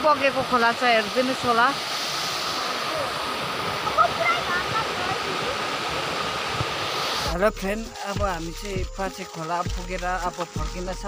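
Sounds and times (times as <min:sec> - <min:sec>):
small waterfall rushing over rocks: 0:00.0 - 0:08.3.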